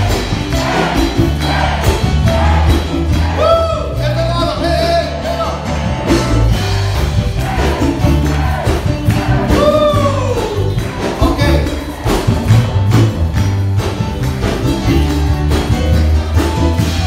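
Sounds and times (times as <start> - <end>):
live band playing latin music: 0.0 - 17.0
hand drums: 6.0 - 17.0.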